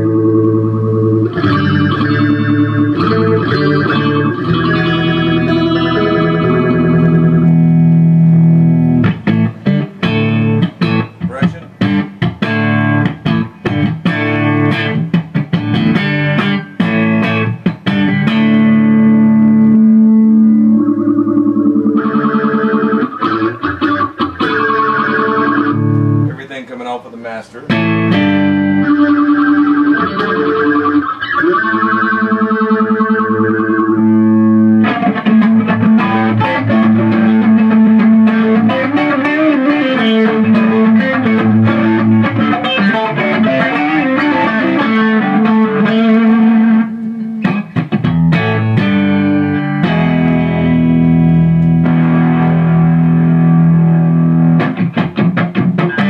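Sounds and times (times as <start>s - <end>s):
electric guitar with chorus effect: 0.0s - 56.0s.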